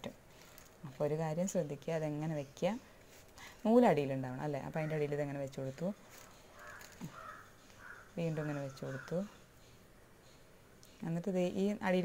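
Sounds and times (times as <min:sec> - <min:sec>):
crows cawing: 0:06.5 - 0:09.4.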